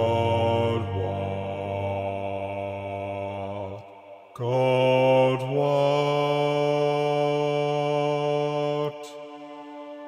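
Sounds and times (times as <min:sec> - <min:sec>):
low choir holding a note: 0:00.0 - 0:10.0.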